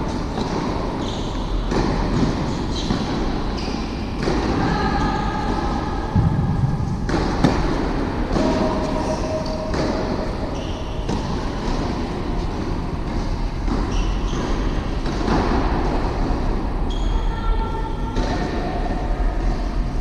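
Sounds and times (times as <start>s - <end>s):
rumbling hum of indoor hall: 0.0s - 20.0s.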